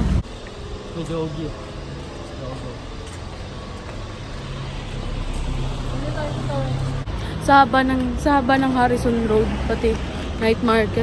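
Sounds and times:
road noise: 0.0s - 11.0s
vehicle engine hum: 0.0s - 11.0s.

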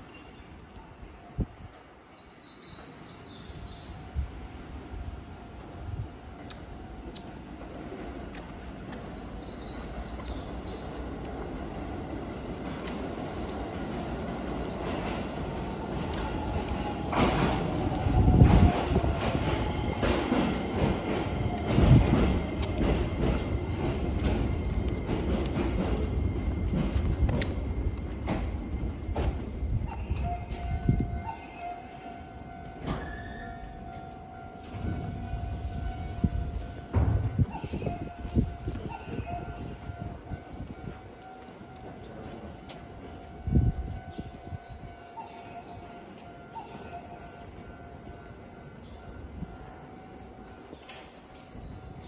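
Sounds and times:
electric train rumble and clatter: 1.4s - 52.0s.

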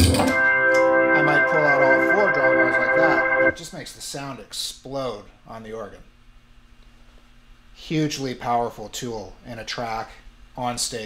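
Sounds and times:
organ holding a bright chord: 0.0s - 3.6s.

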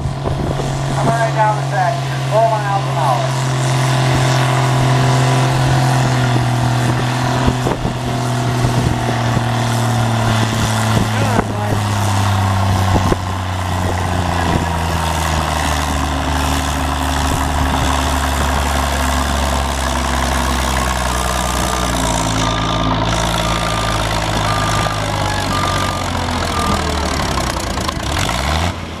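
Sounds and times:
tractor engine working hard: 0.0s - 29.0s.

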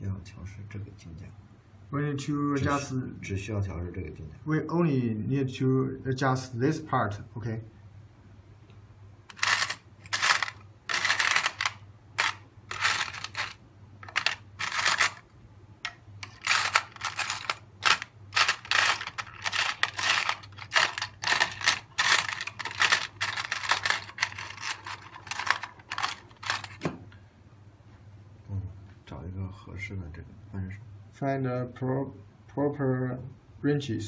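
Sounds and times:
hand tools clinking in plastic tray: 9.3s - 15.2s, 16.2s - 26.8s.

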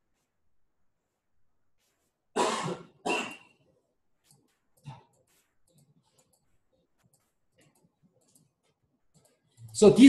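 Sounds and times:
man coughing: 2.4s - 3.5s.

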